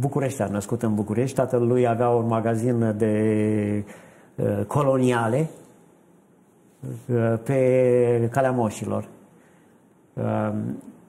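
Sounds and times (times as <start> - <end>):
man speaking: 0.0 - 5.7, 6.8 - 9.2, 10.2 - 10.9.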